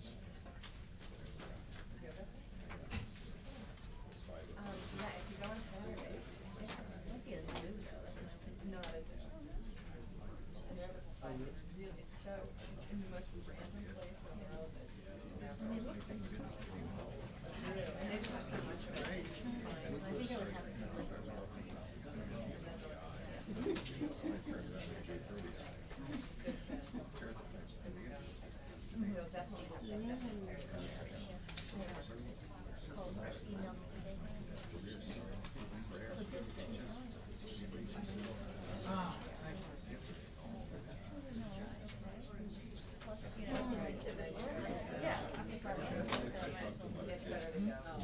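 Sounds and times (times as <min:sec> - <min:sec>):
murmur of people talking: 0:00.0 - 0:48.0.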